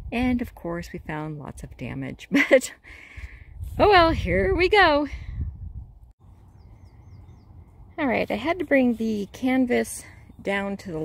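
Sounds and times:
wind rumble on microphone: 0:00.0 - 0:02.1, 0:03.0 - 0:08.9
small birds chirping: 0:06.2 - 0:11.0.

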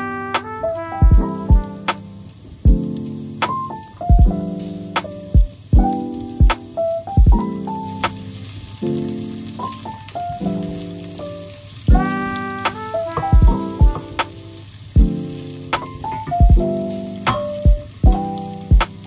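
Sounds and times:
background music with bass drum: 0:00.0 - 0:08.3, 0:11.9 - 0:19.0
onions sizzling in oil: 0:01.3 - 0:19.0.

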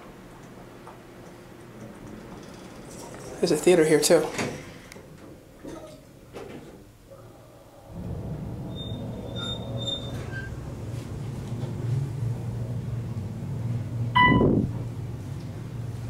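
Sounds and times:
elevator pump low hum: 0:00.0 - 0:16.0
faint high beeps: 0:14.2 - 0:14.5
elevator floor chime: 0:14.2 - 0:14.6.

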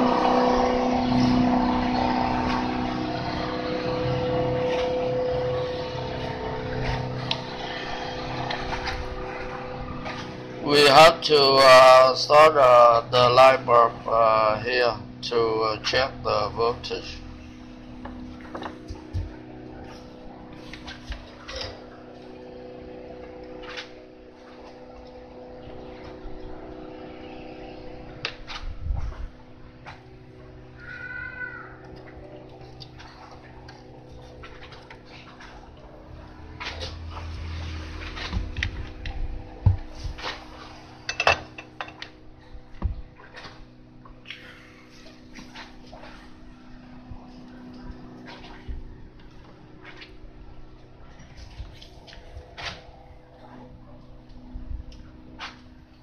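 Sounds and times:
faint steady hum: 0:00.0 - 0:56.0.

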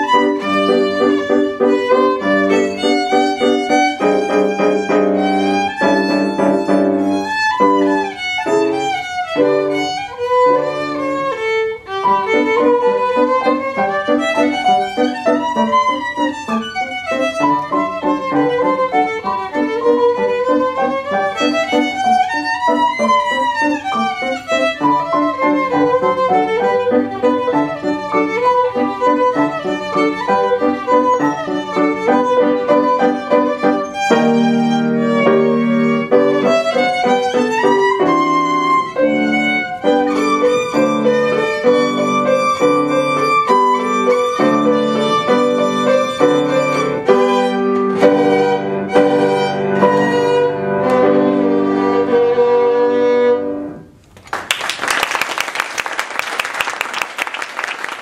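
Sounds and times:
violin melody: 0:00.0 - 0:54.0
piano accompaniment: 0:00.0 - 0:54.1.

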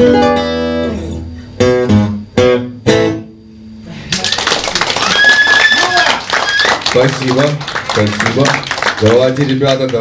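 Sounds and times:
acoustic song: 0:00.0 - 0:04.3
audience applauding and cheering: 0:04.1 - 0:10.0
shrill whistle: 0:05.0 - 0:06.8.

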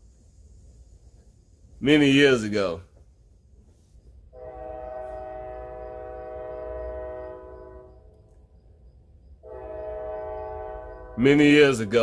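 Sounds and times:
train horn blasts: 0:04.3 - 0:08.4, 0:09.4 - 0:12.0.

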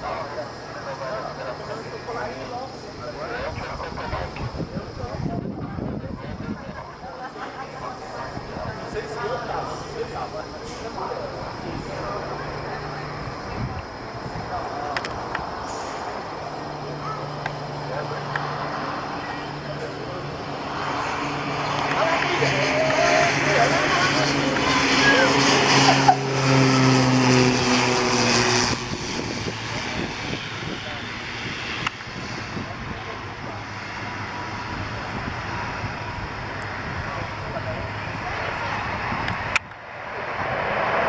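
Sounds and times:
propeller plane landing: 0:00.0 - 0:41.0.

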